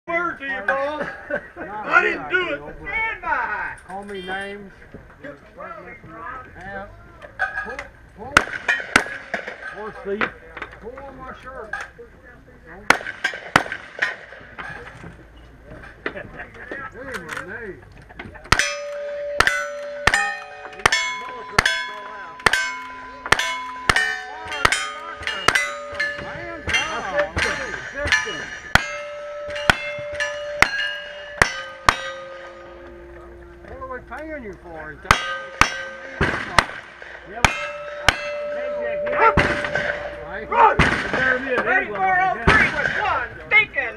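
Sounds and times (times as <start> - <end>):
rifle gunshots: 12.9 - 14.5, 35.1 - 37.2, 40.8 - 41.6
steel target ringing: 18.5 - 41.8.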